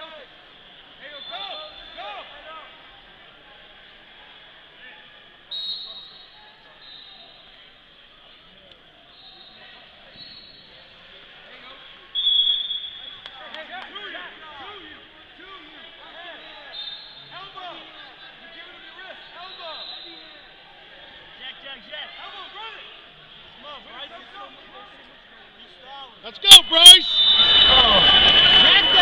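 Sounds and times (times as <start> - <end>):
spectators shouting: 26.4 - 29.0.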